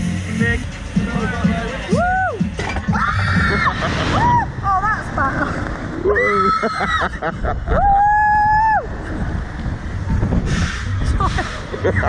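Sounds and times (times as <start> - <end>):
woman screaming: 2.1 - 4.5, 6.0 - 7.2
wind rushing over microphone: 3.2 - 12.0.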